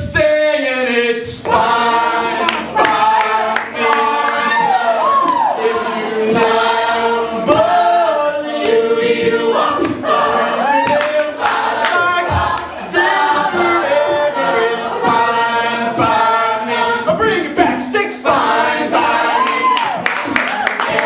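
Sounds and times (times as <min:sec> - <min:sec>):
choral backing vocals: 0:00.0 - 0:21.0.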